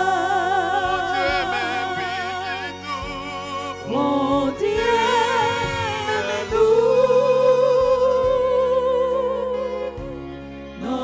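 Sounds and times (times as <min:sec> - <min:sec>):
person singing slow song: 0:00.0 - 0:11.0.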